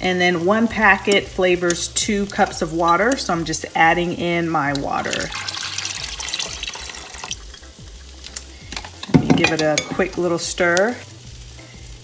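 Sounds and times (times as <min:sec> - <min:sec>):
water pouring into saucepan: 0:04.6 - 0:08.2.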